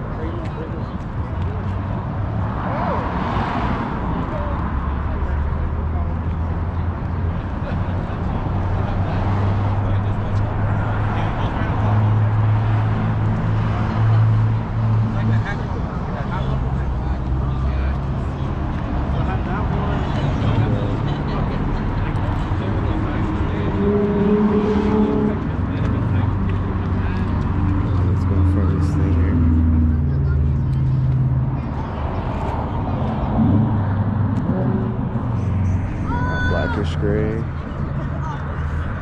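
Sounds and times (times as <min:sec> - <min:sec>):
people talking: 0:00.0 - 0:01.9, 0:13.5 - 0:39.0
car engine rumbling: 0:00.0 - 0:39.0.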